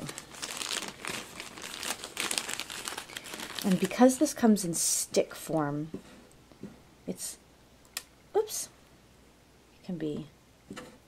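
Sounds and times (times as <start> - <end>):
plastic bag crinkling: 0.0 - 4.7.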